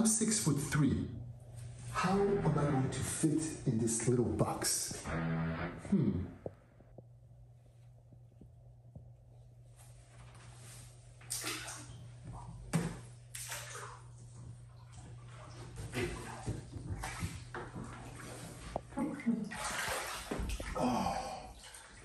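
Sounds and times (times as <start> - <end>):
steady low hum: 0.0 - 22.0
water splashing and sloshing: 10.0 - 22.0.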